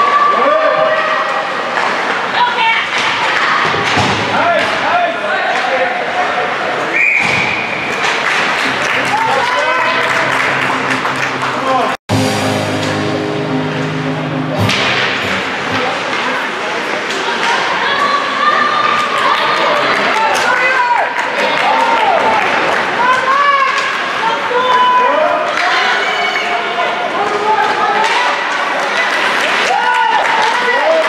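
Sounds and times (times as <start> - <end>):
hockey sticks and puck clacking: 1.7 - 4.9, 7.2 - 10.3, 14.7 - 18.2, 22.6 - 24.8, 25.5 - 26.0, 27.2 - 31.0
players and spectators shouting: 8.6 - 12.0, 17.3 - 28.5
arena music: 8.6 - 16.8.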